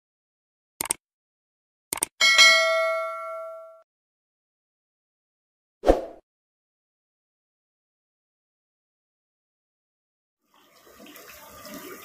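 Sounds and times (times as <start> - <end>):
double mouse click: 0.8 - 1.0, 1.9 - 2.1
notification bell ding: 2.2 - 3.8.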